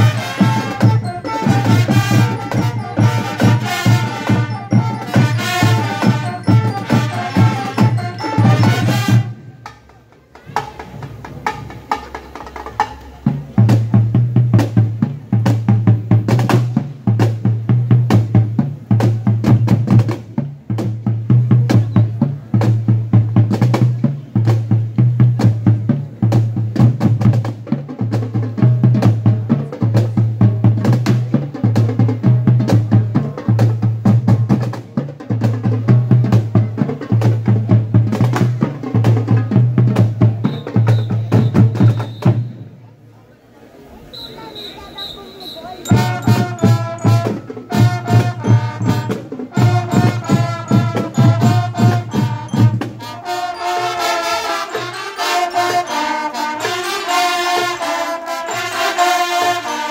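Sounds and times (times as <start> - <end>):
snare and bass drums march beat: 0.0 - 42.7, 44.4 - 59.9.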